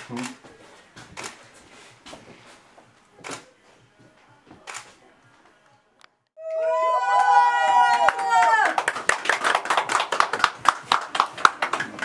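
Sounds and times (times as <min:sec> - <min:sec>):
people clapping: 0:06.5 - 0:12.0.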